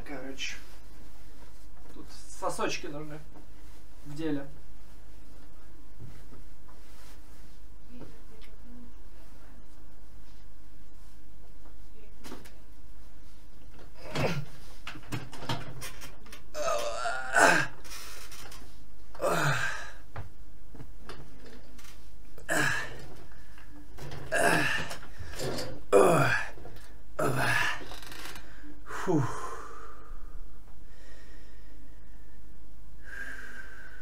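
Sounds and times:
chair creaking: 13.6 - 28.7
man groaning: 16.5 - 17.8, 19.2 - 20.0, 22.5 - 23.0, 24.3 - 25.0, 25.9 - 26.6, 27.2 - 27.8, 28.9 - 29.8
man's falling vocal sound: 16.5 - 17.8, 19.2 - 20.0, 24.3 - 25.0, 25.9 - 26.6.

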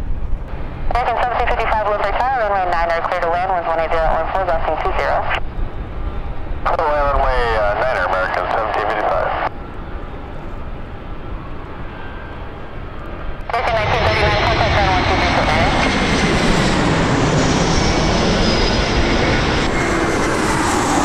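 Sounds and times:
jet airliner flying overhead: 0.0 - 21.0.

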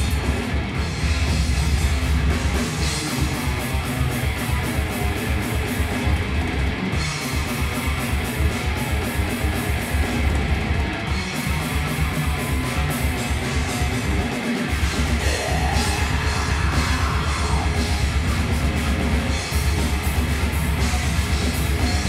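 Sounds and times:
distorted electric guitars: 0.0 - 22.0
drum kit playing: 0.0 - 22.0
fast bass drum beats: 0.0 - 22.0.

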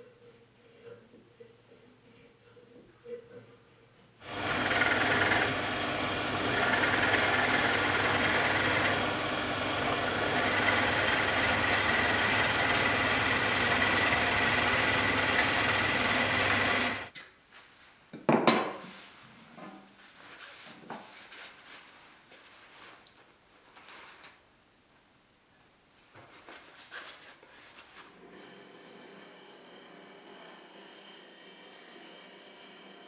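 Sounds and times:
drill press boring into wood: 4.2 - 17.1.

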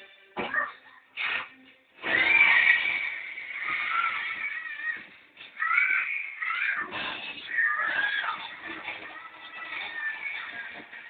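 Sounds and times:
television music: 0.0 - 11.0.

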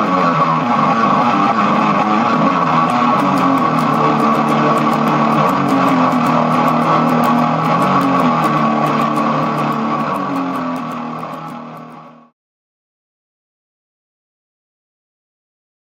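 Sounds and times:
electric guitar through amplifier: 0.0 - 12.3.

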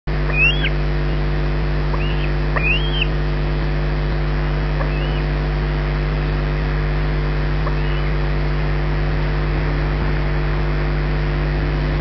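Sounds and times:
low mechanical hum: 0.0 - 12.0
bird whistling call: 0.3 - 1.2, 1.9 - 3.1, 4.8 - 5.3, 7.7 - 8.2.

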